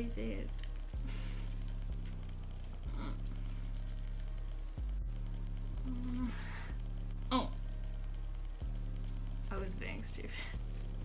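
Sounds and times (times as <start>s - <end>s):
background music low notes: 0.0s - 11.0s.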